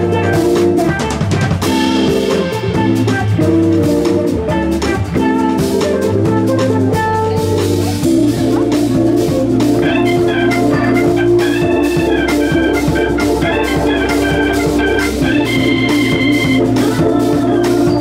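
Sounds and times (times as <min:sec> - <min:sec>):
drum kit: 0:00.0 - 0:18.0
electric guitar: 0:00.0 - 0:18.0
organ chords: 0:00.0 - 0:18.0.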